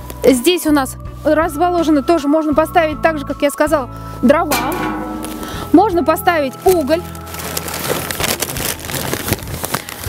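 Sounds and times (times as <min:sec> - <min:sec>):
paper sack rustling: 0:05.8 - 0:10.0.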